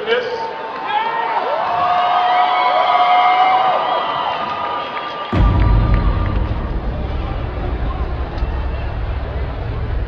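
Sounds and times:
audience cheering and screaming: 0:00.6 - 0:10.0.

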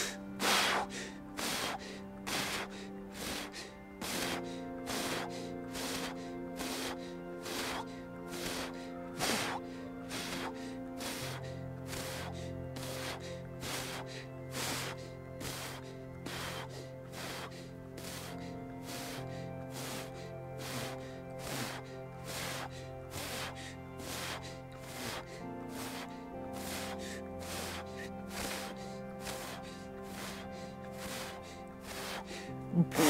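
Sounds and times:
background music with regular beat: 0:00.0 - 0:33.0
man breathing deeply through mouth: 0:00.0 - 0:33.0.

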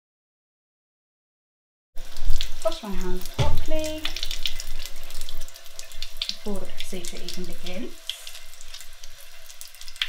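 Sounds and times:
tap water running into sink: 0:02.0 - 0:10.0.

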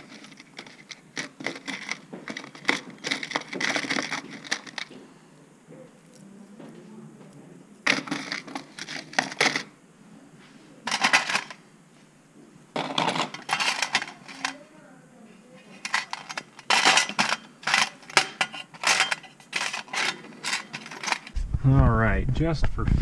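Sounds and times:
metal pins clinking and rattling: 0:00.0 - 0:05.0, 0:07.8 - 0:09.7, 0:10.8 - 0:11.6, 0:12.8 - 0:14.6, 0:15.7 - 0:21.4.

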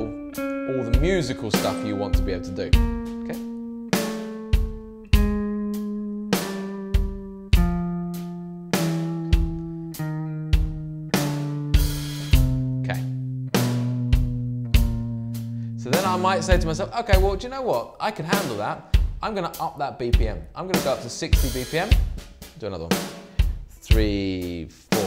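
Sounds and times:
drum beat: 0:00.0 - 0:05.7, 0:06.4 - 0:08.1, 0:10.6 - 0:15.2, 0:15.8 - 0:25.0
clean electric guitar notes: 0:00.0 - 0:17.4.

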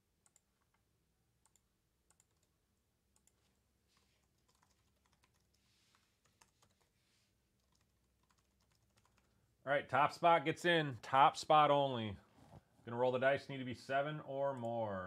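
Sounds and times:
computer keyboard typing: 0:00.2 - 0:00.8, 0:01.4 - 0:03.6, 0:04.2 - 0:05.6, 0:06.2 - 0:06.9, 0:07.6 - 0:09.4.

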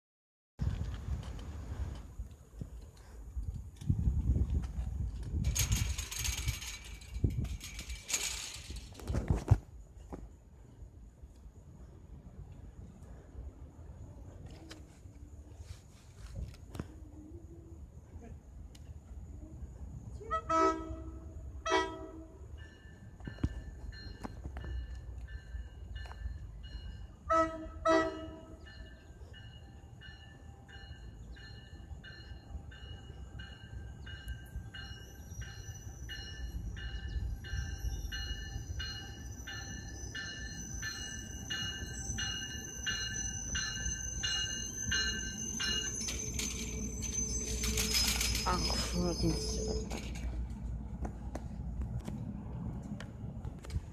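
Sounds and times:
train rumble: 0:00.6 - 0:53.9
train horn blasts: 0:20.2 - 0:22.5, 0:27.2 - 0:28.6
bell ringing steadily: 0:28.6 - 0:49.8.

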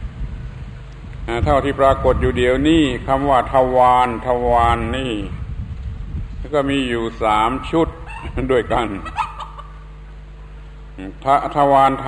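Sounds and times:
voice: 0:01.3 - 0:05.4, 0:06.4 - 0:09.1, 0:11.0 - 0:12.0
chicken call: 0:07.5 - 0:09.9.

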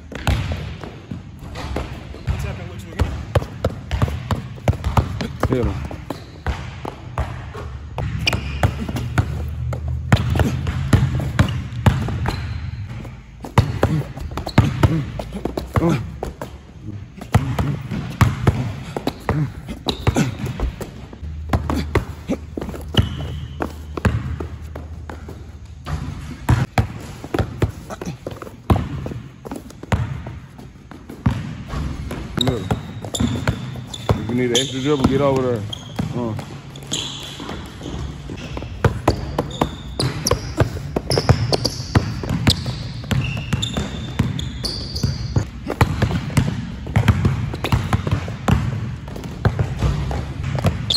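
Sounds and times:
basketball bouncing on court: 0:00.0 - 0:50.9.

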